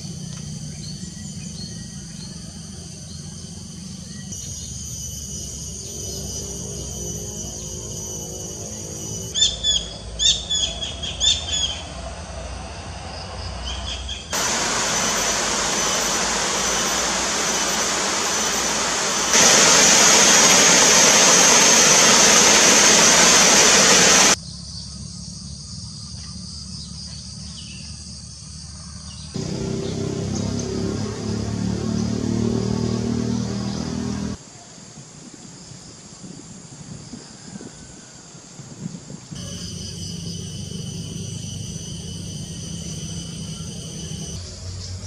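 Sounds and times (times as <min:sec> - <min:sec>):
small bird chirping: 0:04.0 - 0:11.9
river flowing: 0:14.4 - 0:24.4.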